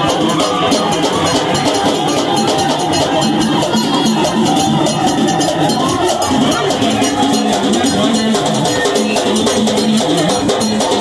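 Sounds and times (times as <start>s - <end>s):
fast steady percussion: 0.0s - 11.0s
voices singing: 0.0s - 11.0s.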